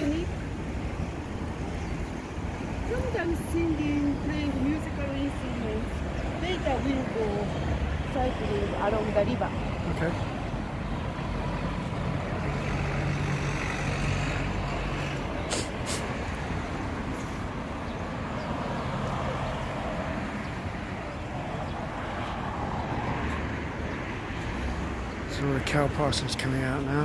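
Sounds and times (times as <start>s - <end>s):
heavy engine hum: 0.0s - 18.4s
rumble of passing vehicles: 0.0s - 27.0s.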